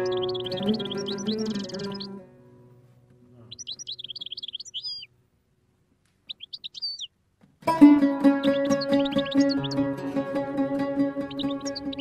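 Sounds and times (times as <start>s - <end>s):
songbird twittering: 0.0s - 2.2s, 3.4s - 5.1s, 6.2s - 7.2s, 8.2s - 10.2s, 10.8s - 12.0s.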